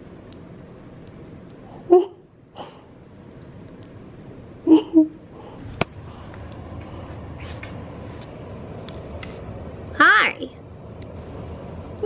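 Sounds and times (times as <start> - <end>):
heating vent air blowing: 0.0 - 12.0.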